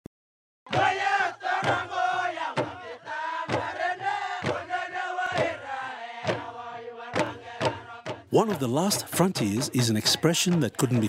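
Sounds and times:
group chanting and shouting: 0.7s - 11.0s
heavy beat: 7.2s - 11.0s.

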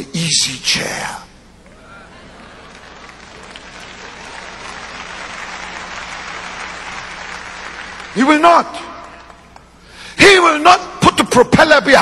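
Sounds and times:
audience applauding: 2.4s - 9.7s.

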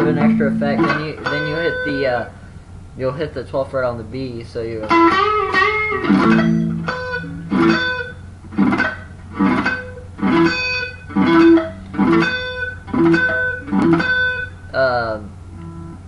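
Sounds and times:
pick scraping muted strings: 0.0s - 2.4s, 4.8s - 14.4s
electric guitar note ringing: 0.0s - 2.6s, 4.8s - 14.7s, 15.6s - 16.0s.

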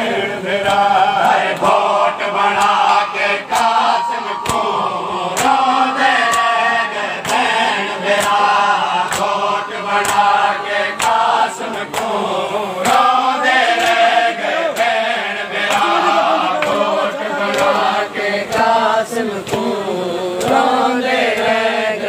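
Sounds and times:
men chanting a lament: 0.0s - 22.0s
chest-beating slaps: 2.6s - 8.5s.

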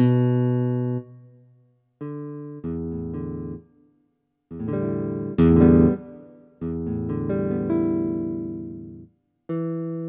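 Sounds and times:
electronic keyboard chords: 0.0s - 1.2s, 4.6s - 10.0s.

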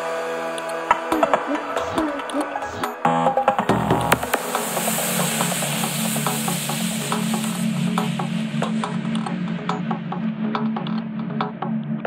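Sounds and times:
hissing synthesized noise wash: 0.0s - 10.7s
low synth drone: 0.0s - 12.0s.

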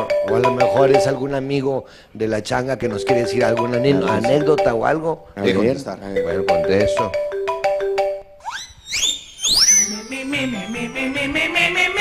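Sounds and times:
comedy whistle swoops: 8.4s - 12.0s.

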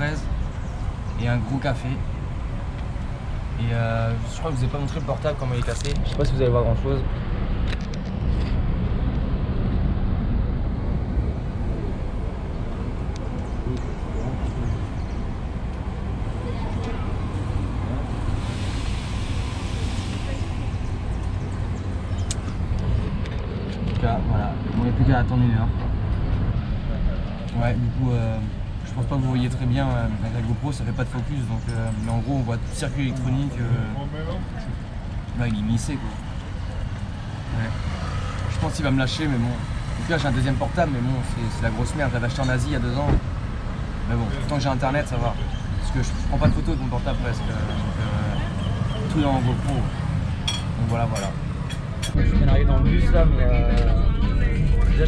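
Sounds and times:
passing traffic: 0.0s - 55.0s
street rumble: 0.0s - 55.0s.

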